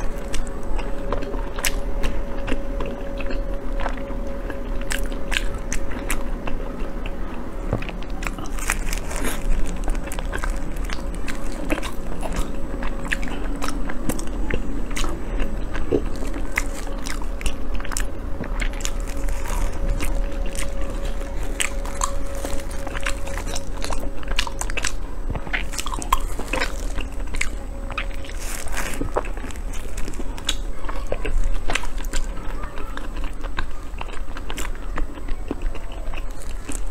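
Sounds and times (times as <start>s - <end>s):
person chewing: 0.0s - 36.9s.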